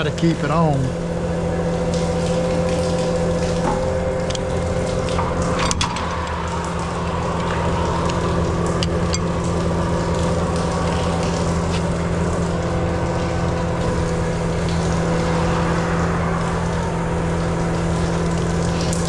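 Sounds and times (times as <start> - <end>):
truck engine and water pump: 0.0 - 19.0
water jet spraying: 0.0 - 19.0.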